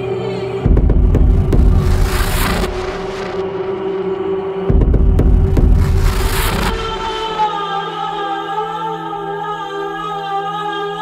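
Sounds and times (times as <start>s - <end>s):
steady held drone: 0.0s - 10.5s
distorted bass rumble: 0.7s - 3.4s, 4.7s - 7.2s
hissing noise: 1.1s - 4.0s, 4.7s - 7.5s.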